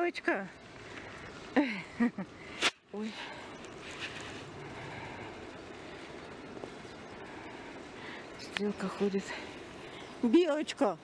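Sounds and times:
outdoor background hum: 0:00.0 - 0:11.0.

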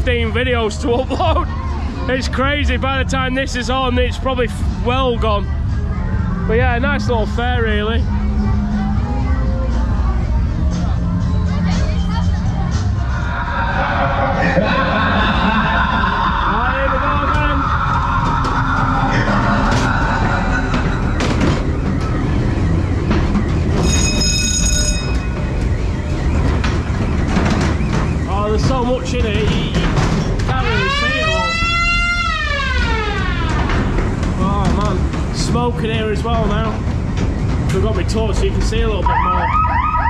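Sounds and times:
ride car rumbling on track: 0:00.0 - 0:40.0
steady electronic tone: 0:13.0 - 0:27.9
spooky wailing effects: 0:13.0 - 0:34.8, 0:39.0 - 0:40.0.

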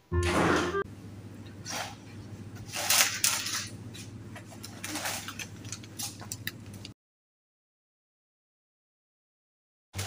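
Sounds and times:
steady low hum: 0:00.0 - 0:06.9.

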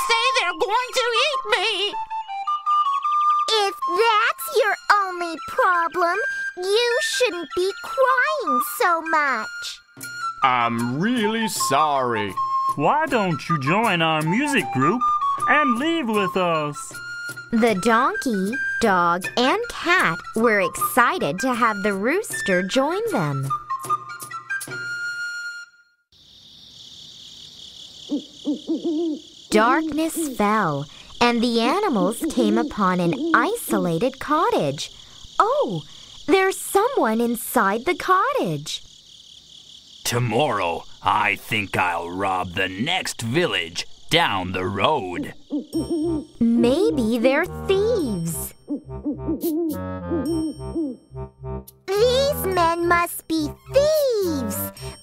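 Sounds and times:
crickets chirring: 0:00.0 - 0:24.2, 0:26.1 - 0:55.0
soft background music with bass: 0:10.0 - 0:19.1
owl hooting: 0:28.0 - 0:37.7, 0:44.4 - 0:47.4, 0:48.2 - 0:51.1
musical cue: 0:45.8 - 0:53.0.

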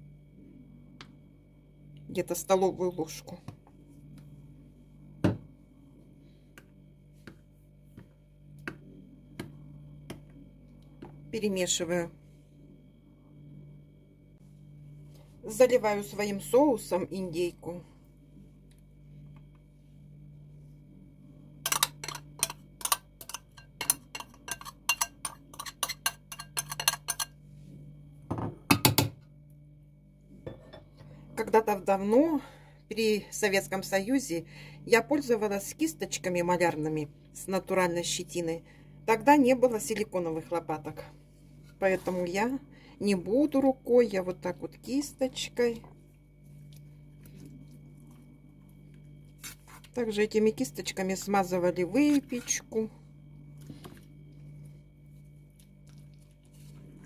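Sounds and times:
low steady hum: 0:00.0 - 0:57.0
metal spoon scraping ceramic bowl: 0:21.7 - 0:27.4.

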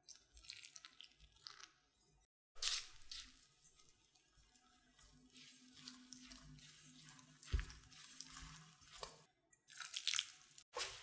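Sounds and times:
wet dough squishing: 0:00.0 - 0:11.0
crumbly flour rustling: 0:02.6 - 0:11.0.

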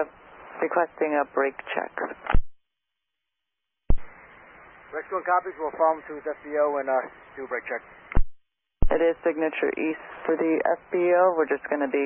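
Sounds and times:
open radio channel hiss: 0:00.0 - 0:02.4, 0:03.9 - 0:08.2, 0:08.9 - 0:12.0.

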